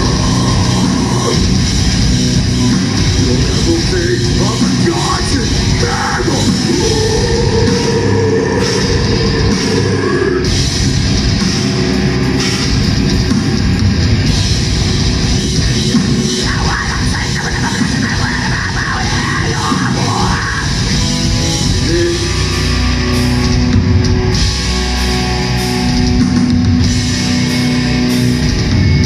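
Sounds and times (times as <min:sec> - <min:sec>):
heavy metal band playing: 0:00.0 - 0:29.0.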